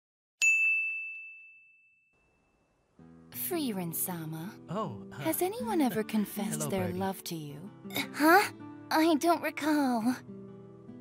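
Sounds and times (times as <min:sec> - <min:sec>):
bright bell ding: 0:00.4 - 0:02.6.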